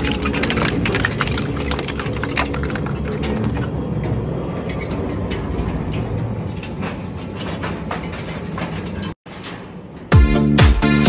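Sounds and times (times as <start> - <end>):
sharp mechanical clicks and knocks: 0.0 - 10.2.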